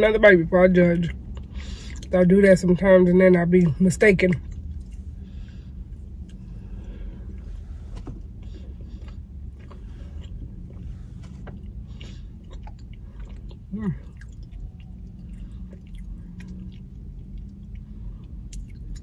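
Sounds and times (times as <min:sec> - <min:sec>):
steady low hum: 0:00.0 - 0:19.0
chewing with mouth clicks: 0:00.9 - 0:02.3, 0:03.4 - 0:19.0.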